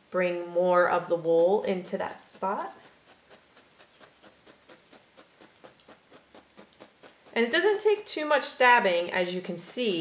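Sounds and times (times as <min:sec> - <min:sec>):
felting needle poking into wool: 0:00.4 - 0:10.0.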